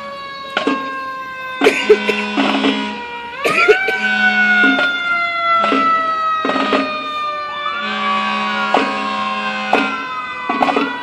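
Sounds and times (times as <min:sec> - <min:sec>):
emergency siren winding up: 0:00.0 - 0:11.0.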